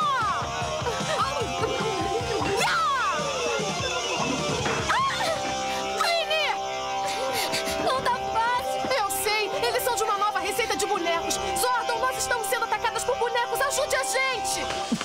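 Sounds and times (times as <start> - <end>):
vocal cries: 0.0 - 6.1
background music with held notes: 0.0 - 15.0.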